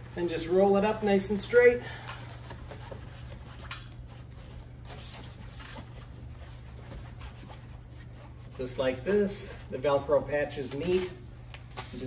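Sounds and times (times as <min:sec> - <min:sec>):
low room hum: 0:00.0 - 0:12.0
fabric shade rubbing and rustling: 0:02.3 - 0:09.5.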